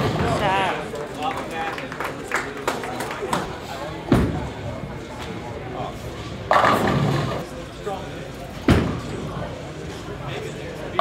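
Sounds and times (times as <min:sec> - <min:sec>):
chatter of crowd: 0:00.0 - 0:11.0.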